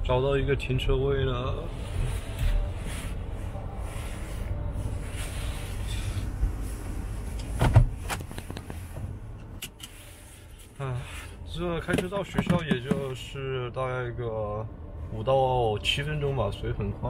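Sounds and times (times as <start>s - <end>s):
car engine and tyres rumble: 0.0s - 17.0s.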